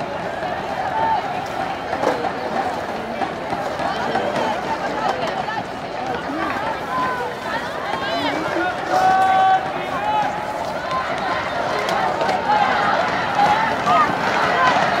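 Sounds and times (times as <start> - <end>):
overlapping talk and calls: 0.0 - 15.0.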